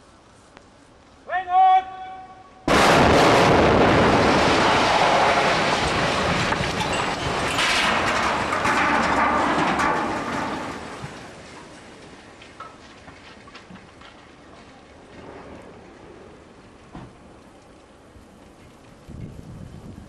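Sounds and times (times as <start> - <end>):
demolition blast: 2.6 - 13.6
building collapsing rumble: 2.7 - 20.0.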